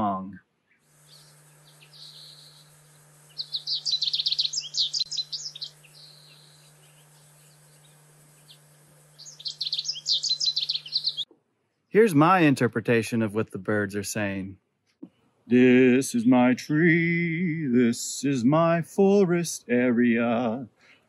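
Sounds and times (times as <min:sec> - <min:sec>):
steady low hum: 0:00.0 - 0:11.3, 0:15.4 - 0:20.9
finch singing: 0:01.0 - 0:11.3.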